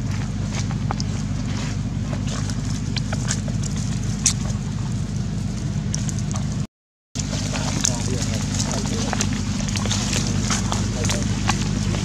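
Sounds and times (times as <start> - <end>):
footsteps on dry leaves: 0.0 - 6.6, 7.2 - 12.0
steady low hum: 0.0 - 12.0.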